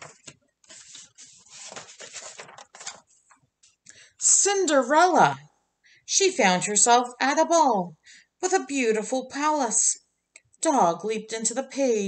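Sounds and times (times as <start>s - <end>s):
book pages rustling: 0.0s - 3.8s.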